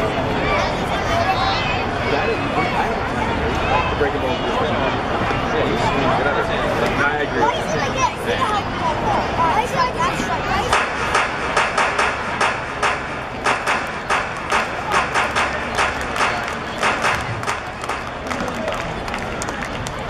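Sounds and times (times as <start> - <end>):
crowd chatter: 0.0 - 20.0
crowd rhythmic clapping: 10.7 - 20.0.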